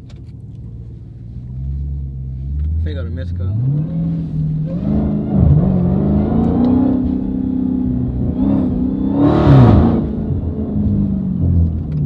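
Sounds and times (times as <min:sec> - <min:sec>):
car engine droning inside cabin: 0:00.0 - 0:12.0.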